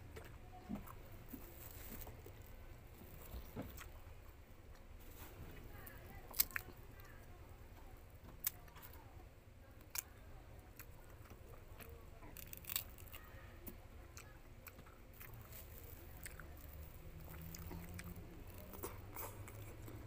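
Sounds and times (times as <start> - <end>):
fruit being chewed: 0.1 - 4.1, 4.7 - 7.2, 10.7 - 20.0
fruit rind tearing: 10.8 - 13.3, 14.6 - 20.0.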